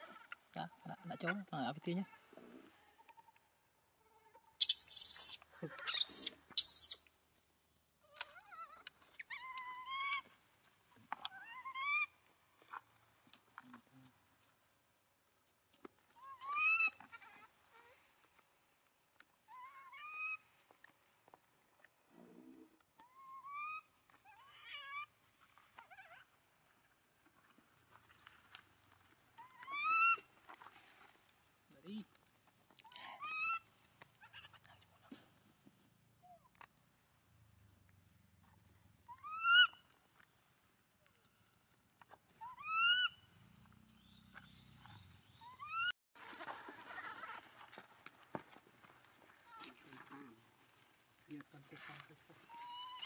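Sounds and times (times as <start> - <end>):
infant monkey crying: 4.0 - 7.0
macaque whistle-like cries: 4.6 - 7.0.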